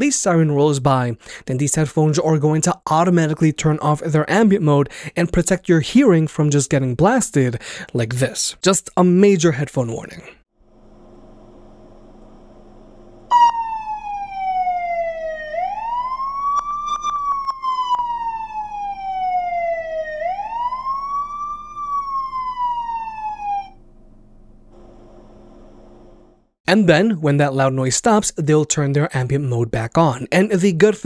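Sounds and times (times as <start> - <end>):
faint steady hum: 10.6 - 13.9, 23.7 - 26.5
police siren wailing: 13.3 - 23.8.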